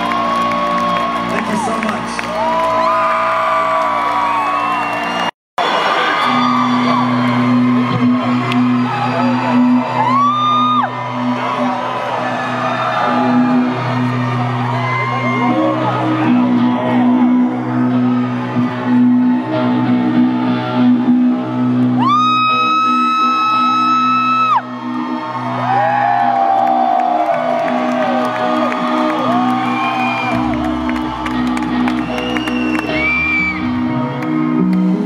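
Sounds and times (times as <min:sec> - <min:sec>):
crowd whooping and shouting: 0:00.0 - 0:35.0
shrill held whoop: 0:02.4 - 0:13.7, 0:22.0 - 0:33.8.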